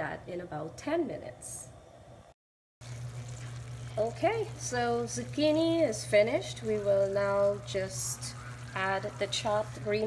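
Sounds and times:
low steady hum: 0.0 - 10.0
stew bubbling in a pan: 2.8 - 10.0.

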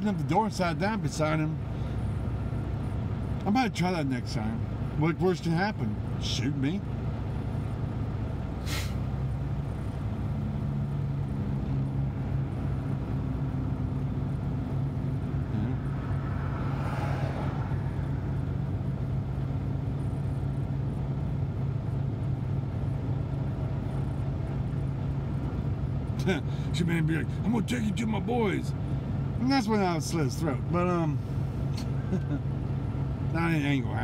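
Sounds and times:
diesel truck engine humming: 0.0 - 34.0.

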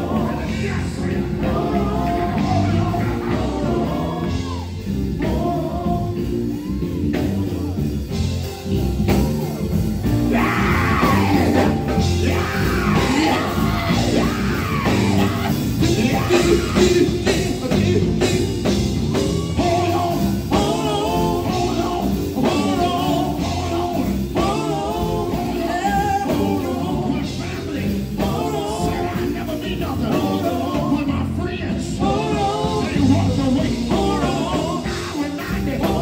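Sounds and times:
gospel group singing: 0.0 - 8.3, 9.0 - 36.0
drums: 0.0 - 36.0
electric bass guitar: 0.0 - 36.0.

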